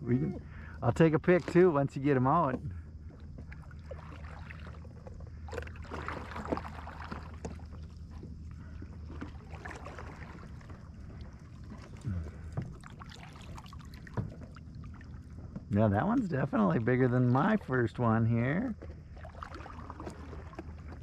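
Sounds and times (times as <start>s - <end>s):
kayak paddle stroking through water: 0.0s - 21.0s
steady low hum: 0.0s - 21.0s
water splashing and dripping: 1.0s - 21.0s.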